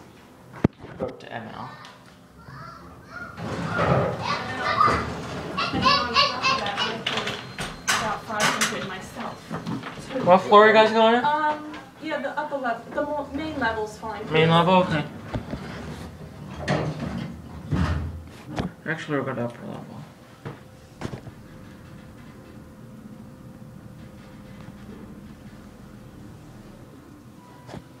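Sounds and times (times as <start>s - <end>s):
children chattering excitedly: 2.4s - 7.3s
elevator doors sliding shut: 3.4s - 9.2s
people talking: 4.2s - 9.4s, 11.2s - 15.1s.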